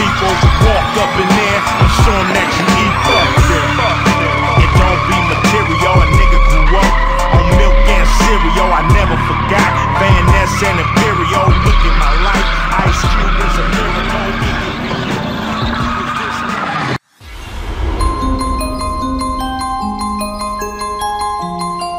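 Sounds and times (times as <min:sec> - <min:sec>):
hip hop music with heavy beat: 0:00.0 - 0:17.0, 0:18.0 - 0:21.9
tyres squealing: 0:00.0 - 0:17.0.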